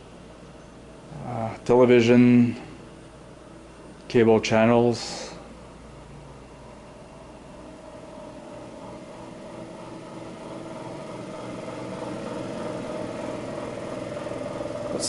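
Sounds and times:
fan motor humming: 0:00.0 - 0:15.0.

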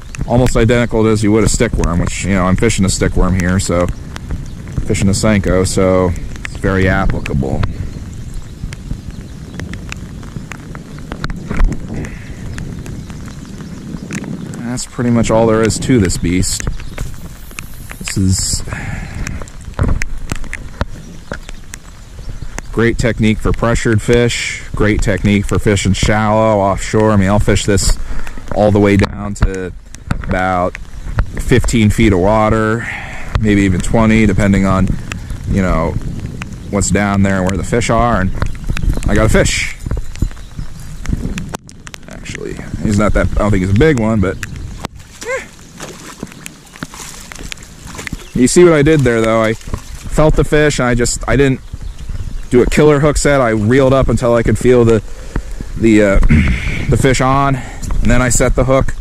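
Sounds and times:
raindrops ticking near microphone: 0:00.0 - 0:59.0
fish splashing at water surface: 0:45.0 - 0:50.2.

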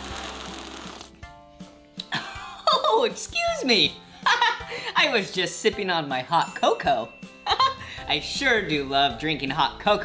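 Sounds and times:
slurping from a mug: 0:00.0 - 0:01.2
music jingle: 0:05.4 - 0:10.0.

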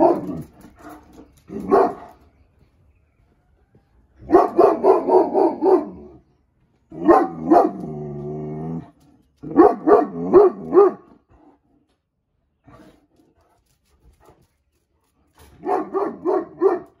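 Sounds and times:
dog barking: 0:01.6 - 0:02.1, 0:04.3 - 0:06.1, 0:07.0 - 0:07.8, 0:09.4 - 0:11.1, 0:15.6 - 0:17.0.

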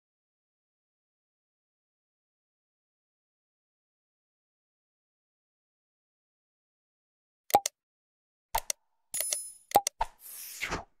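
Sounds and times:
quick clicks and pops: 0:07.5 - 0:07.8, 0:08.6 - 0:10.9.

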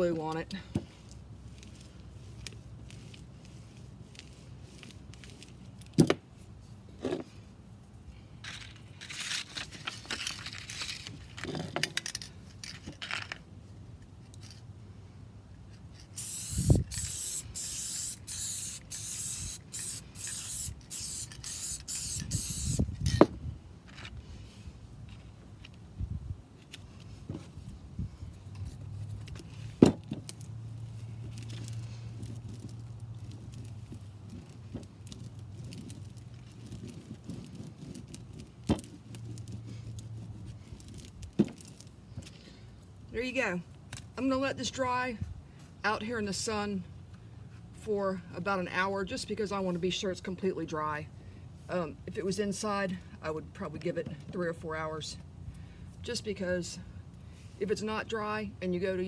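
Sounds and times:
paper handling scrapes: 0:00.8 - 0:05.8
aerosol spray hissing bursts: 0:16.2 - 0:22.9.

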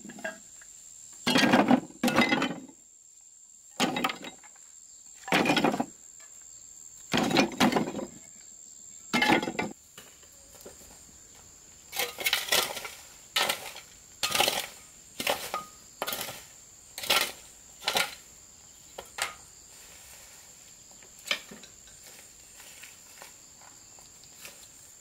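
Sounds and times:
shovel scraping dirt: 0:11.9 - 0:18.3.

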